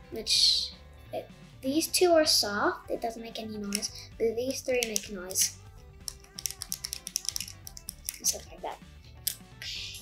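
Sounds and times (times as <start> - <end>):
plastic fidget toy clicking: 4.5 - 8.5.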